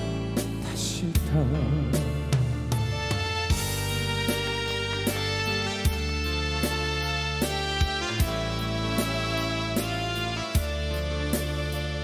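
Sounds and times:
man singing a slow ballad: 0:00.0 - 0:02.8
accompaniment held notes: 0:02.7 - 0:12.0.

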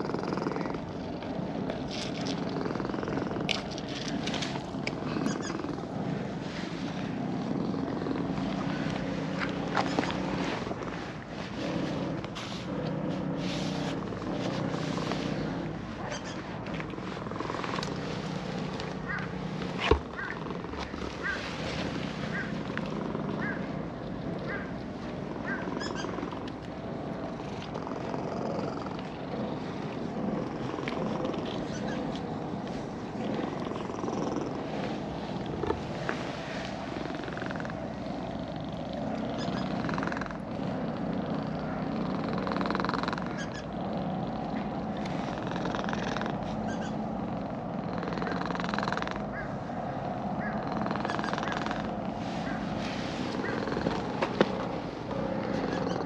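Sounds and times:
cat purring: 0:00.0 - 0:56.0
hand rubbing fur: 0:03.9 - 0:24.3, 0:28.1 - 0:38.4, 0:51.4 - 0:55.8.

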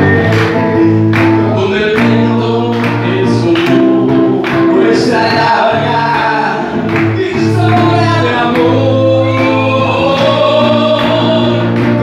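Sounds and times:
amplified instrumental accompaniment: 0:00.0 - 0:12.0
men singing into microphones: 0:00.0 - 0:12.0.

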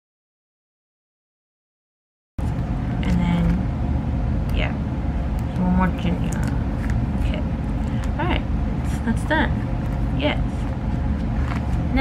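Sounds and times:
steady low rumble: 0:02.4 - 0:12.0.

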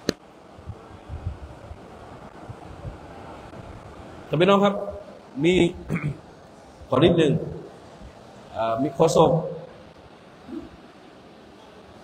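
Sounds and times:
low microphone background noise: 0:00.0 - 0:12.0.

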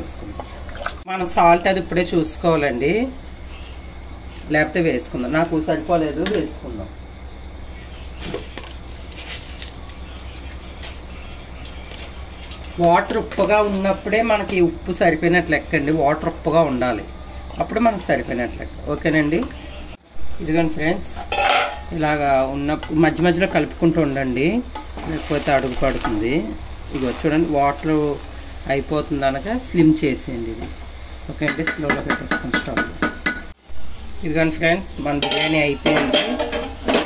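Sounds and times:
pot simmering with low hiss: 0:20.8 - 0:37.0
wooden spoon scraping a pot: 0:24.8 - 0:26.2.

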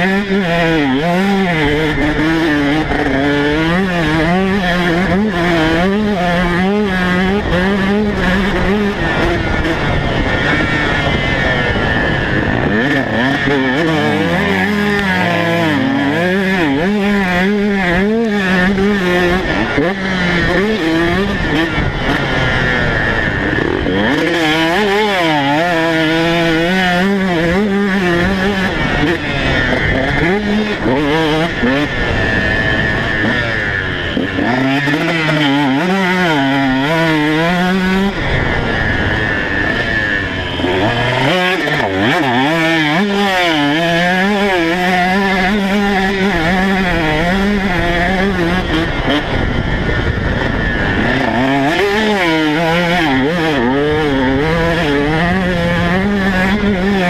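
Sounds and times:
motocross engine revving: 0:00.0 - 0:57.0.

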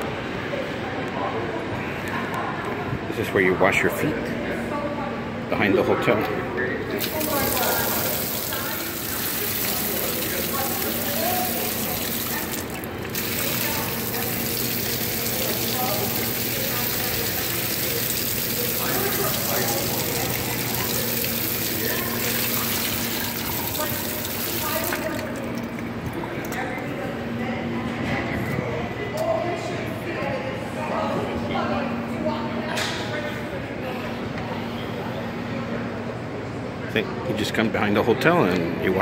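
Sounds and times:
shower head spraying water: 0:07.0 - 0:25.7.

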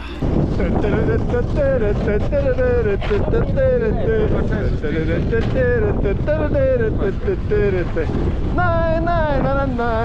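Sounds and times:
snowboard sliding over snow: 0:00.0 - 0:10.0
wind buffeting microphone: 0:00.0 - 0:10.0.

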